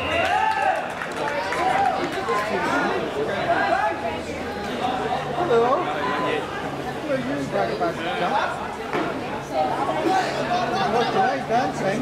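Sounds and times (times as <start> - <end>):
people talking and calling: 0.0 - 12.0.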